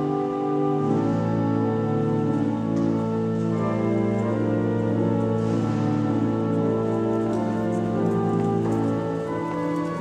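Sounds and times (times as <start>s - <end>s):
church organ chords: 0.0s - 10.0s.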